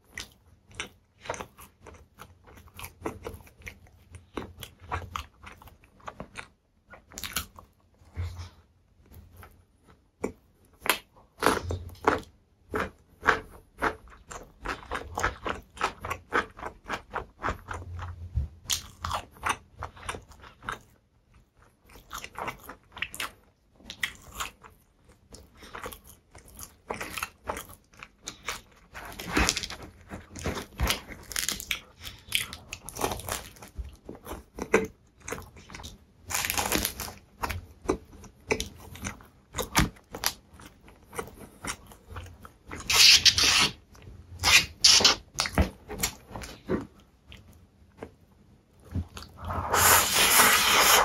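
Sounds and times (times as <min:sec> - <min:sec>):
person chewing food: 0:00.0 - 0:51.0
plastic fork raking noodles: 0:42.8 - 0:43.8, 0:49.4 - 0:51.0.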